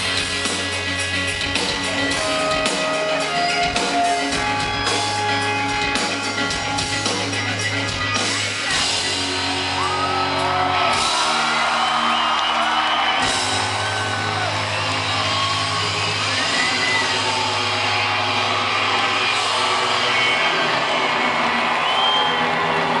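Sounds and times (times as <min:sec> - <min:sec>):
live rock band: 0:00.0 - 0:23.0
crowd cheering and whooping: 0:01.8 - 0:07.1, 0:08.7 - 0:23.0.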